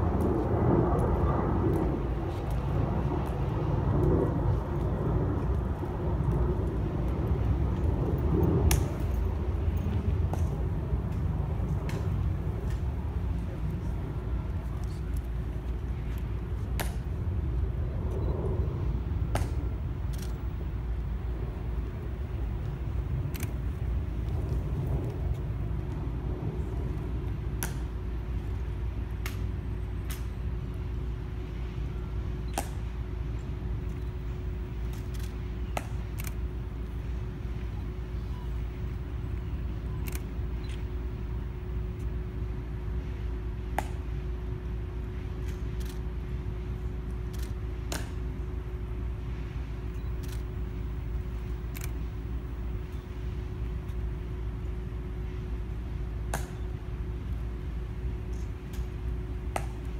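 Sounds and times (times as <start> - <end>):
low outdoor rumble: 0.0 - 59.9.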